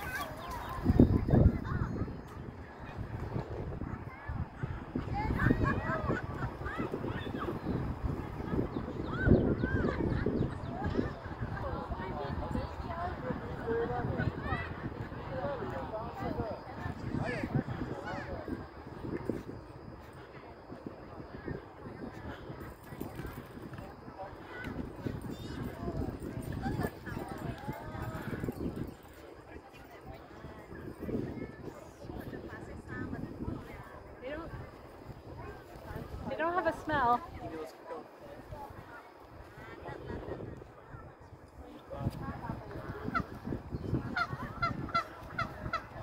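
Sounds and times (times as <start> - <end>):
distant chatter of people: 0.0 - 46.0.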